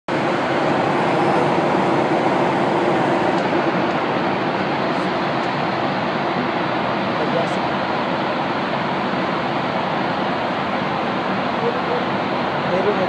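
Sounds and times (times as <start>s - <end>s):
jet airliner cabin noise: 0.1s - 13.0s.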